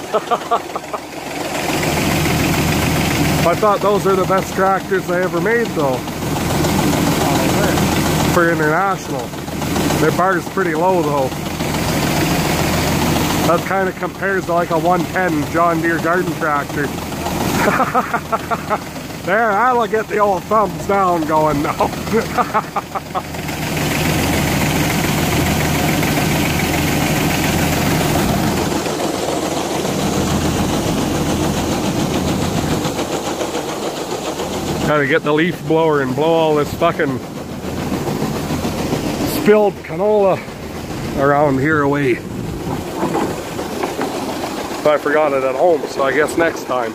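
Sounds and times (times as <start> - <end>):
person laughing in bursts: 0.0 - 1.4, 17.4 - 19.1, 21.5 - 23.4
tractor engine running: 0.0 - 46.9.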